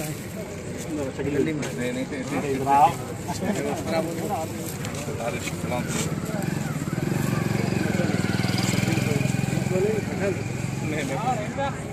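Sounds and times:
crowd voices: 0.0 - 11.9
motorcycle engine running: 5.6 - 11.5.

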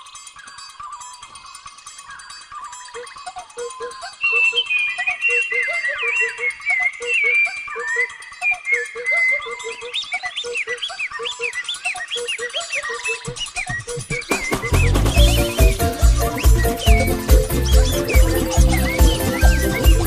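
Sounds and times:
chirping gliding bird calls: 0.0 - 20.0
music with quick steady pulse: 14.3 - 20.0.

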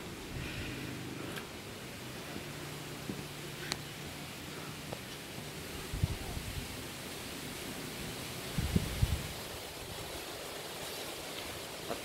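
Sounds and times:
steady outdoor hiss: 0.0 - 12.0
wind buffeting microphone: 5.7 - 6.8, 8.1 - 10.4.

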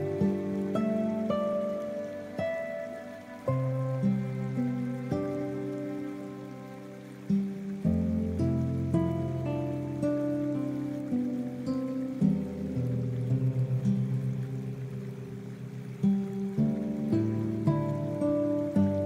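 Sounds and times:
gentle guitar music: 0.0 - 19.0
soft steady rain: 0.0 - 19.0.

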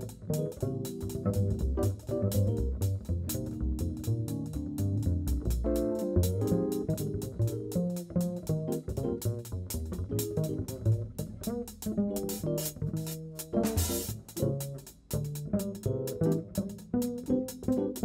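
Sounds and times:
double bass plucked: 0.0 - 18.0.

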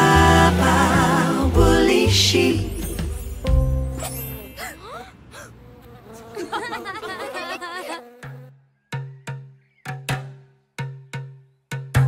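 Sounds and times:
song chord: 0.0 - 4.4
cartoon bee buzzing: 3.8 - 8.6.

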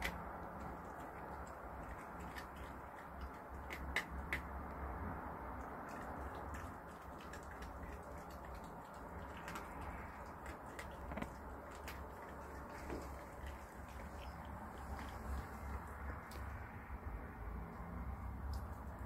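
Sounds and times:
fox mouth clicks while eating: 0.0 - 4.9, 5.6 - 16.6.

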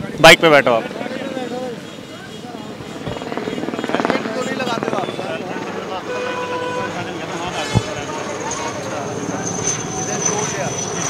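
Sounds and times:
traffic: 0.0 - 11.0
vehicle horn: 1.8 - 7.2.

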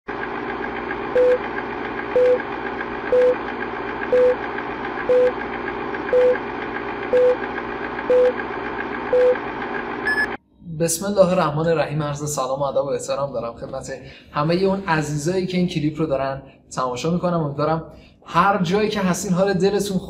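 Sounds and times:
film projector running: 0.1 - 10.4.

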